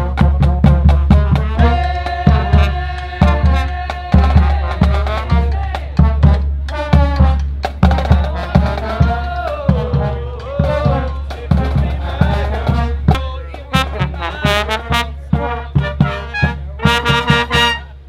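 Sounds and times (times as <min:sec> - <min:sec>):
drum hits: 0:00.0 - 0:17.7
trumpets and trombones: 0:00.0 - 0:18.0.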